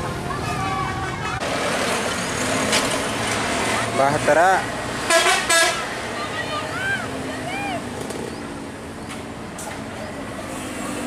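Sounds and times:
buses passing: 0.0s - 11.0s
motorcycles passing: 0.0s - 11.0s
truck passing: 0.0s - 11.0s
people talking: 6.1s - 7.8s.

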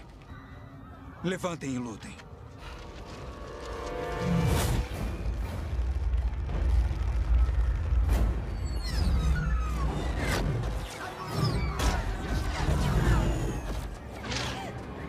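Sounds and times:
dramatic film score: 0.0s - 15.0s.

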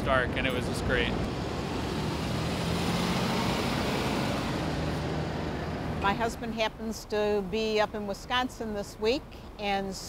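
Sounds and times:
bus engine driving past: 0.0s - 6.8s
street traffic noise: 0.0s - 10.0s.

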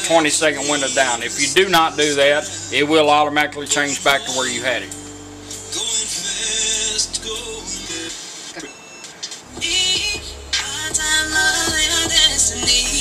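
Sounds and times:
music with singing from car radio: 0.0s - 13.0s.

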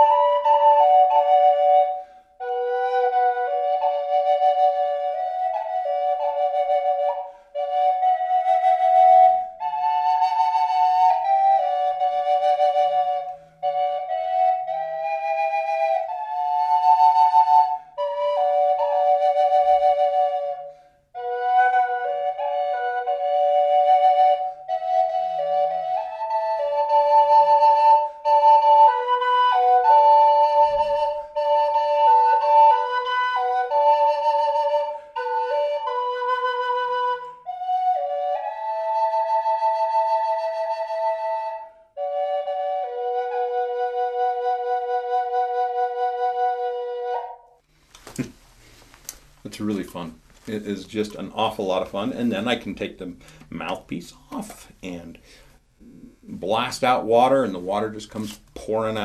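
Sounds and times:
double flute melody: 0.0s - 59.0s.

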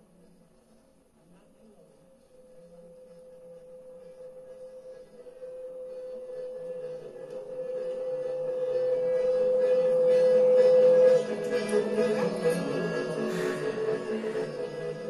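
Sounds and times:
sustained electronic tone: 2.6s - 15.0s.

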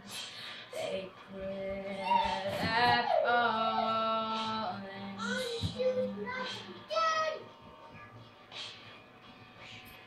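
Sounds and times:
girl singing: 0.7s - 8.2s.

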